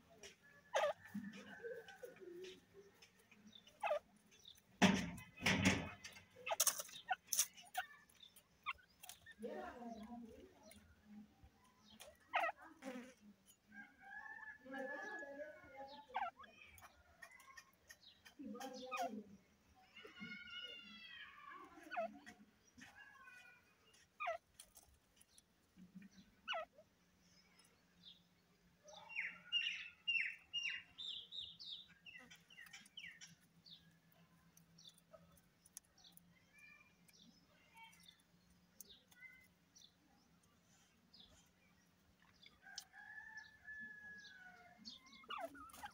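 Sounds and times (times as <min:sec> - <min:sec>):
francolins calling: 0:00.6 - 0:13.0, 0:28.8 - 0:40.4, 0:42.2 - 0:45.9.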